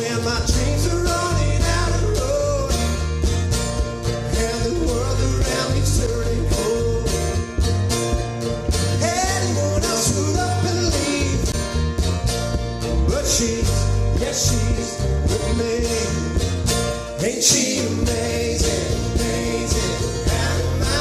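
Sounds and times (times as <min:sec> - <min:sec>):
country song: 0:00.0 - 0:21.0.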